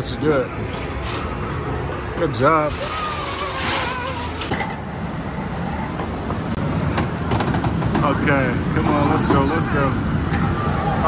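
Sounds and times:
arcade low rumble: 0.0s - 11.0s.

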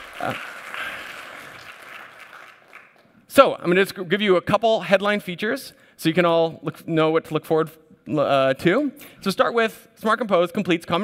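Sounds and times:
audience applause: 0.0s - 3.0s.

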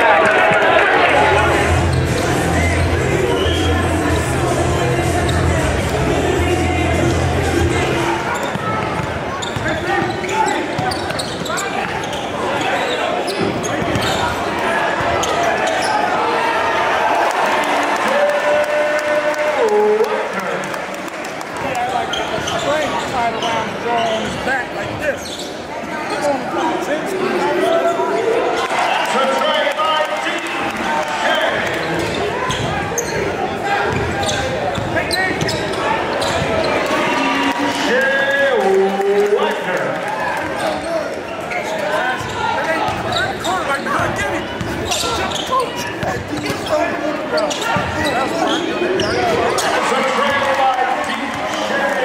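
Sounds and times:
crowd chatter: 0.0s - 52.0s
sneakers squeaking: 1.4s - 16.1s, 21.8s - 26.9s, 31.3s - 37.2s, 40.4s - 49.9s.

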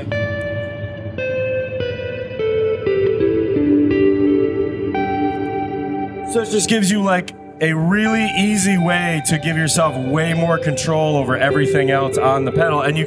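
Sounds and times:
soft electric guitar with reverb: 0.0s - 13.0s.

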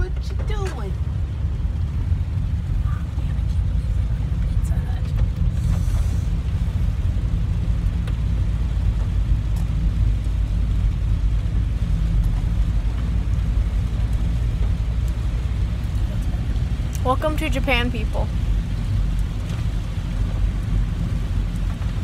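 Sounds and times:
car driving rumble from inside: 0.0s - 22.0s.

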